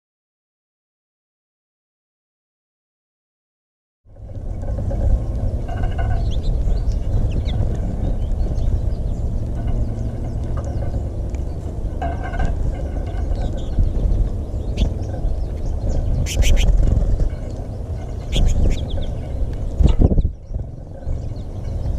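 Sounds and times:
steady low rumble: 4.1s - 21.9s
birds chirping and twittering: 4.2s - 21.9s
loud bird calls: 4.6s - 21.9s.

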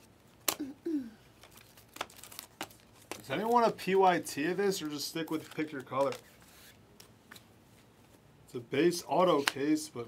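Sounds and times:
trading cards being flipped: 4.8s - 7.5s.

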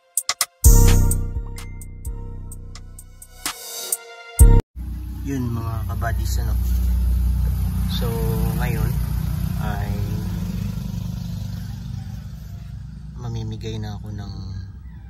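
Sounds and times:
engine idling: 4.8s - 11.0s.

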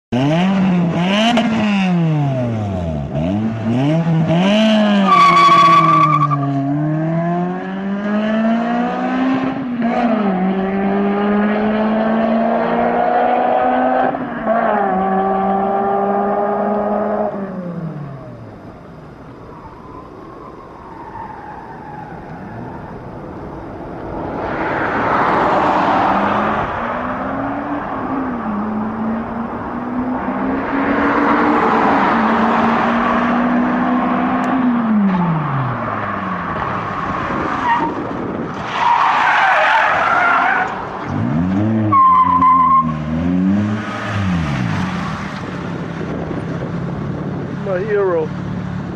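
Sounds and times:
car engine accelerating: 0.1s - 48.9s.

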